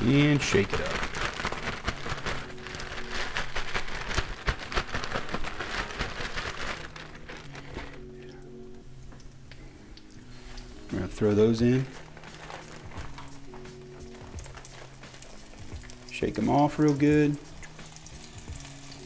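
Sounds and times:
plastic bag rattling and crinkling: 0:00.0 - 0:08.4, 0:10.5 - 0:18.7.

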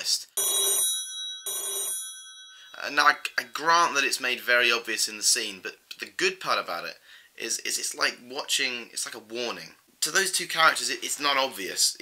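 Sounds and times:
telephone ringing: 0:00.4 - 0:03.0.

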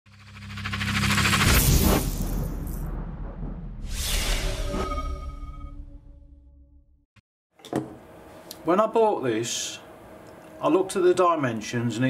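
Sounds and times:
fast fluttering high sweep: 0:00.1 - 0:04.6
riser sound effect: 0:00.1 - 0:06.9.

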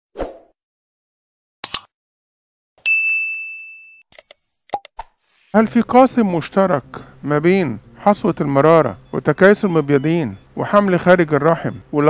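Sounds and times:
bright bell ding: 0:02.8 - 0:04.0.

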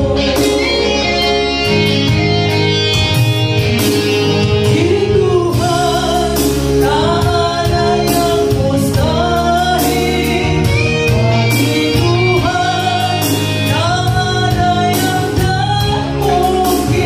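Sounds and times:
woman singing gospel: 0:00.0 - 0:02.2, 0:04.2 - 0:17.0
electronic keyboard chords: 0:00.0 - 0:17.0.

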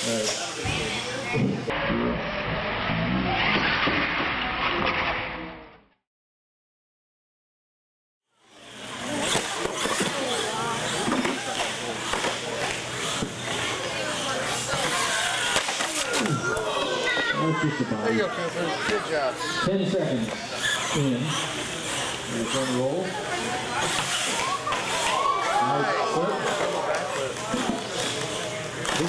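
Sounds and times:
crowd chatter in a large hall: 0:00.0 - 0:05.7, 0:08.3 - 0:29.0
toy monster truck driving on concrete: 0:00.0 - 0:05.9, 0:08.5 - 0:29.0.

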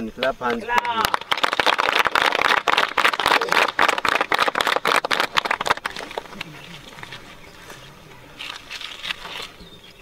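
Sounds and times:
children clapping: 0:00.2 - 0:06.5.

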